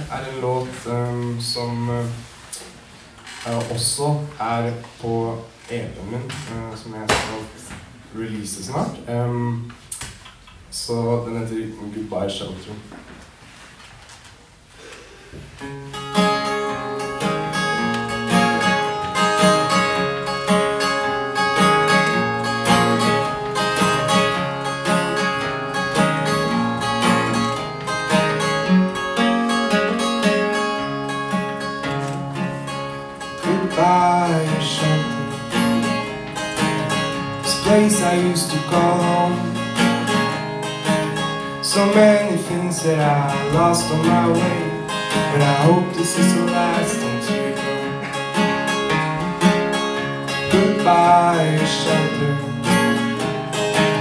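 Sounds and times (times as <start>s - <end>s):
acoustic guitar playing: 0.0s - 9.6s, 14.6s - 54.0s.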